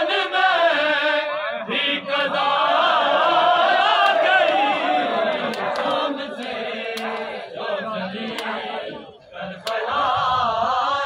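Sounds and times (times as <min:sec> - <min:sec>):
men chanting together: 0:00.0 - 0:11.0.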